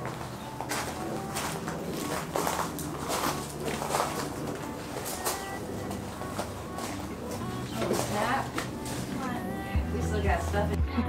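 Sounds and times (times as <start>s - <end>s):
bird calling: 6.2s - 10.5s.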